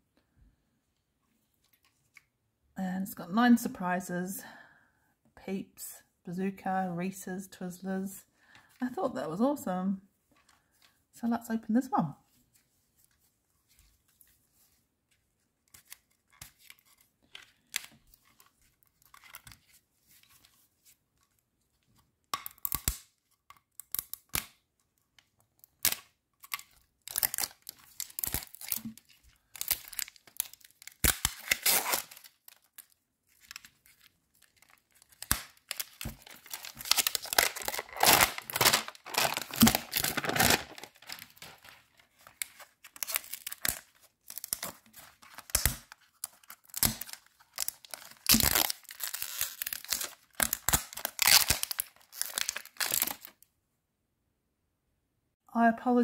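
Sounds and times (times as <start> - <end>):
wrapper tearing and crinkling: 25.7 - 53.4.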